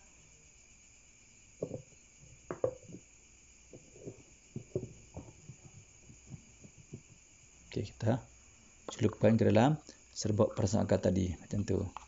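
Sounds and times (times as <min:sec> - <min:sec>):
faint high hiss: 0:00.0 - 0:12.0
light knocks and taps: 0:01.6 - 0:01.8, 0:02.5 - 0:03.0, 0:03.7 - 0:07.1.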